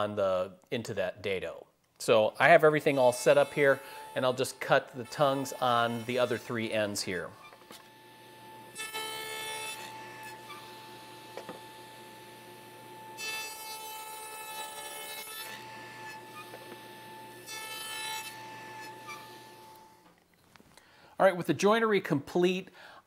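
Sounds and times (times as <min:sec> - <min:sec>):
table saw cutting wood: 0:02.8 - 0:20.1.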